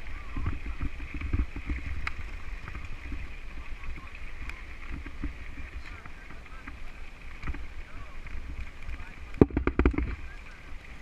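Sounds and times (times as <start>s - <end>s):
bike rattling: 0.0s - 11.0s
bike tyres rumbling on gravel: 0.0s - 11.0s
wind on microphone: 0.0s - 11.0s.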